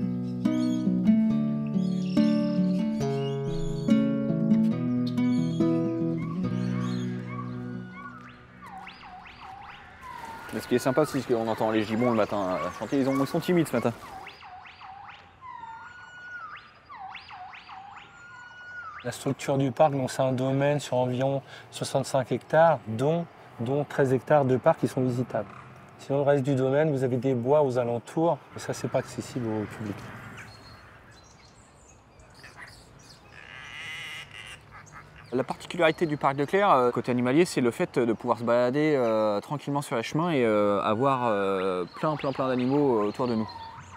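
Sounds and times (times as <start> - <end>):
background music: 0.0 - 9.2
gibbon whooping calls: 5.9 - 19.1, 32.4 - 35.4, 42.2 - 43.9
long animal call: 32.4 - 35.5.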